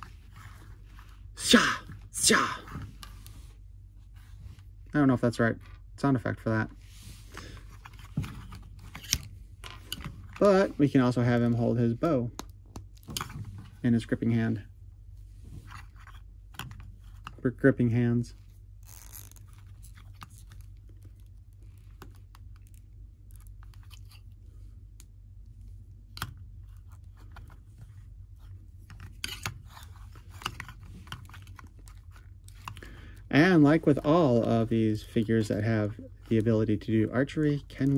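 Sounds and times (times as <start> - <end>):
steady low hum: 0.0 - 37.9
plastic clicks and scrapes: 28.8 - 32.8.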